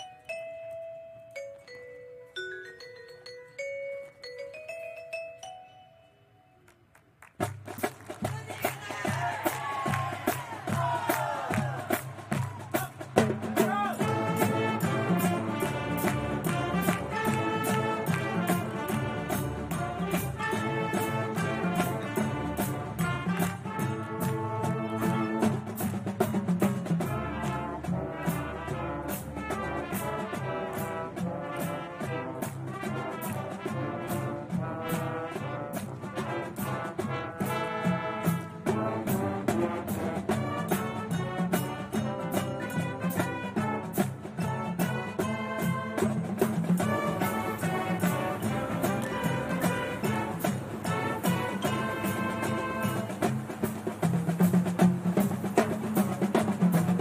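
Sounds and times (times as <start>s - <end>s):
percussion hits: 6.6s - 57.0s
marching band brass melody: 7.2s - 57.0s.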